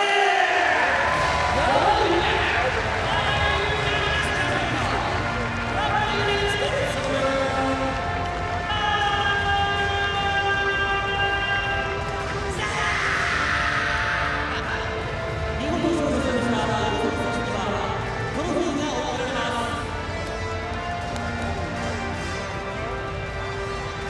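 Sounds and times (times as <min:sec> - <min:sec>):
arena music: 0:00.0 - 0:24.0
crowd noise: 0:00.0 - 0:24.0.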